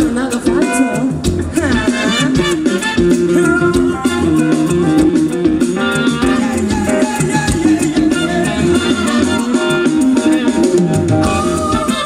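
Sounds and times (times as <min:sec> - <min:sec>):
funk band playing: 0:00.0 - 0:12.0.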